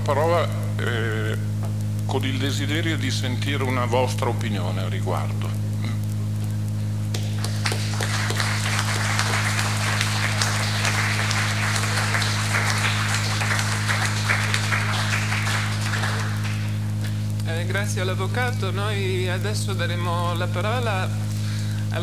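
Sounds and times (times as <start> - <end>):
low hum: 0.0 - 22.0
audience applauding: 7.1 - 17.7.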